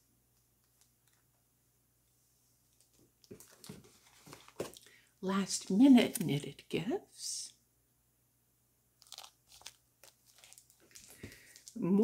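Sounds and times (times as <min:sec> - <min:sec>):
book cover crinkling and rustling: 0:02.8 - 0:04.9, 0:09.0 - 0:12.0.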